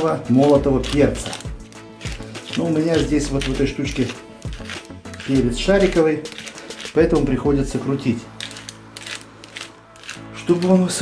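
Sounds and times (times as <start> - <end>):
pepper mill grinding: 0.1 - 11.0.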